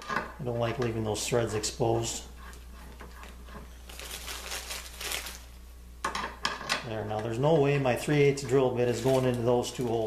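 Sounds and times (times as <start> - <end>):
plastic bag crinkling: 3.8 - 5.6, 8.8 - 10.0.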